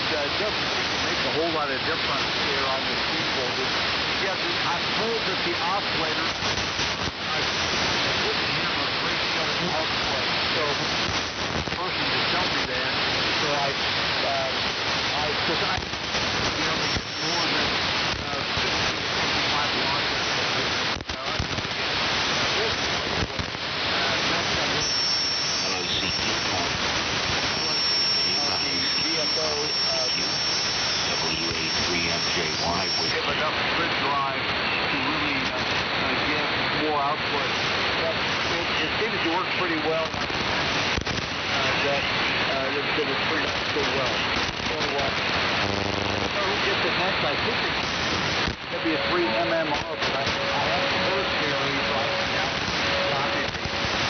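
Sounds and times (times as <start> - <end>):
radio static with crackling crashes: 0.0 - 54.0
weak radio voice: 0.0 - 54.0.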